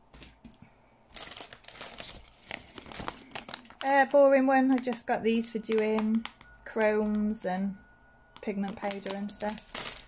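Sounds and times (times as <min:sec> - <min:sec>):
plastic bag crinkling: 0:01.1 - 0:07.4, 0:08.4 - 0:10.0.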